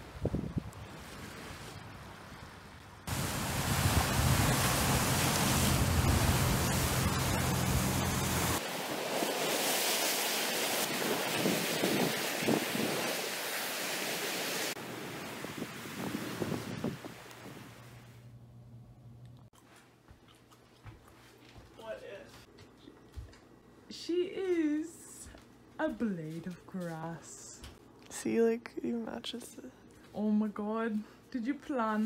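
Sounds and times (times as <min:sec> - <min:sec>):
wind buffeting microphone: 0:00.0 - 0:08.6, 0:15.1 - 0:17.9
waves breaking on rocky shore: 0:03.1 - 0:17.8.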